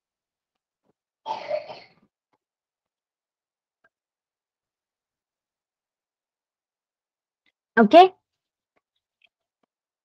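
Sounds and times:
person coughing: 1.3 - 2.0.

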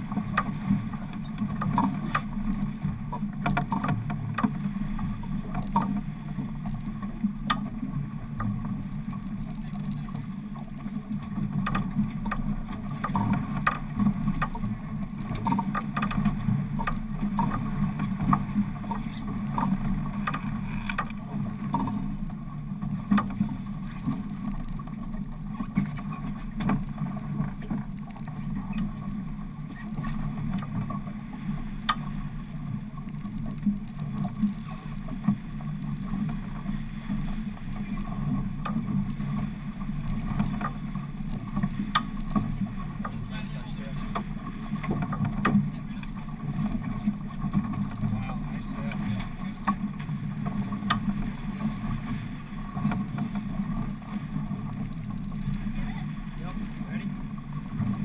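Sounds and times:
boat engine humming: 0.0 - 58.0
water washing against hull: 0.0 - 58.0.

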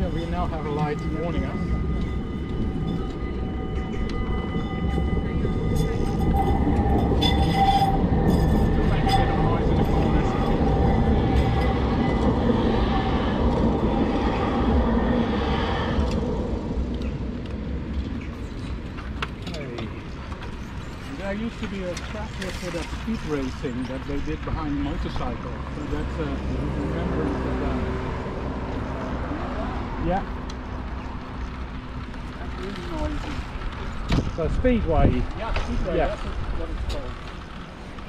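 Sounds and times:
tram passing on rails: 0.0 - 38.0.

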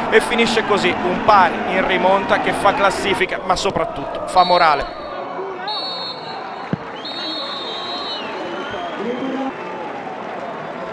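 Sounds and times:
stadium crowd noise: 0.0 - 10.9
referee's whistle blasts: 5.6 - 9.5.

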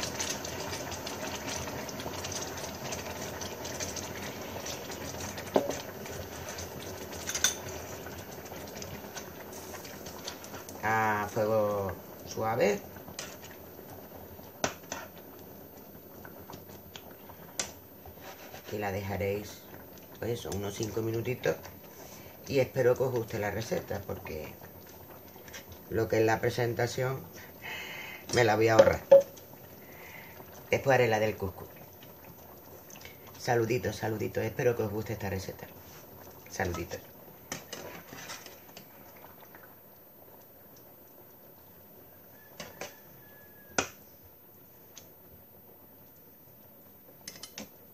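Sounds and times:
utensil stirring food in a pan: 0.0 - 41.1
metal spoon clinking on pan: 7.2 - 7.6
utensil tapping metal pan: 28.7 - 29.4.

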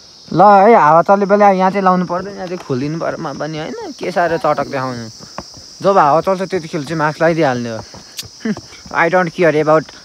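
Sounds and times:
crickets chirping: 0.0 - 10.0
man talking: 0.3 - 5.2, 5.8 - 9.9.

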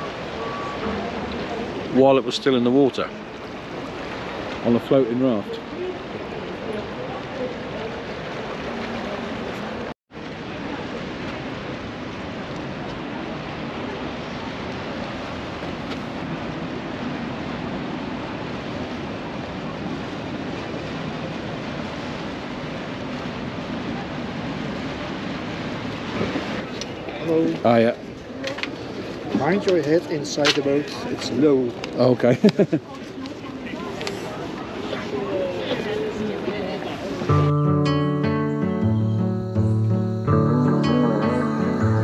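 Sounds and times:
canal water: 0.0 - 42.0
tour boats moving: 0.0 - 42.0.

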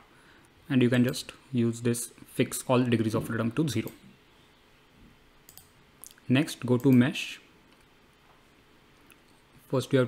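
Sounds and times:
faint computer mouse clicks: 5.5 - 6.2.

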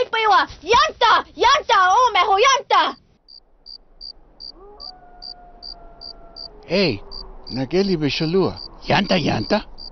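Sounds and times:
cricket chirping: 3.2 - 9.9.

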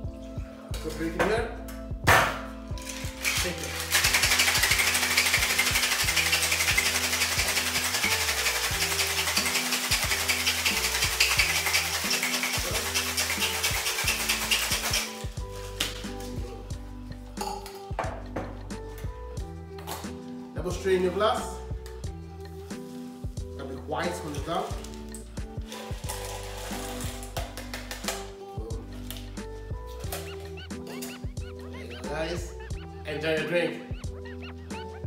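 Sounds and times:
background music with bass line: 0.0 - 35.0
ice rattling in cocktail shaker: 2.8 - 16.0, 24.3 - 28.0.

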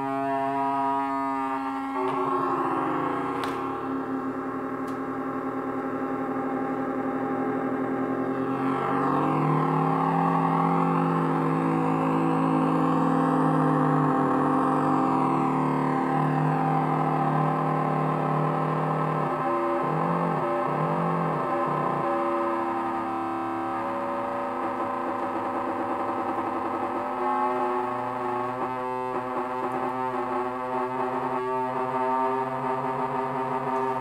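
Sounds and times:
gliding synth tones: 0.0 - 34.0
low warbling synth figure: 0.0 - 34.0
synthesizer drone: 0.0 - 34.0.

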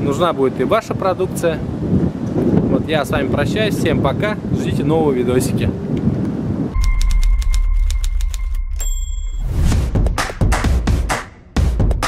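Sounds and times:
wind noise on microphone: 0.0 - 9.0
rising whoosh: 6.7 - 11.5
high beeps: 6.8 - 9.7.

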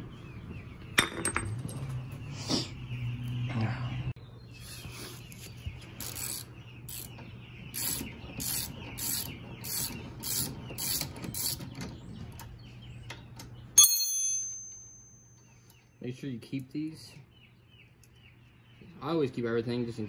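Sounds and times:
ratchet wrench clicking: 6.0 - 7.1
sharp metallic clang: 13.8 - 15.8.

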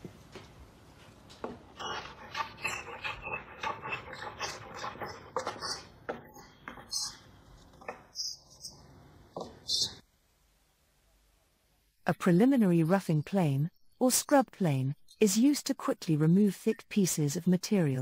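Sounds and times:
hand plane strokes on wood: 1.8 - 5.9.

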